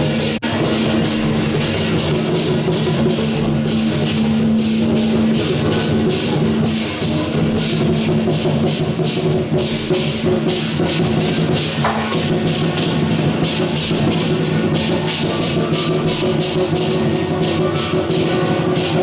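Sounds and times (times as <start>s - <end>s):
cymbals clashing: 0.0s - 19.0s
drums: 0.0s - 19.0s.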